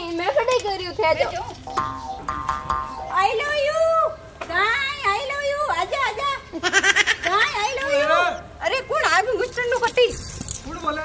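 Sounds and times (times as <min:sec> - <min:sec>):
metallic jingling: 0:00.1 - 0:03.3, 0:09.0 - 0:11.0.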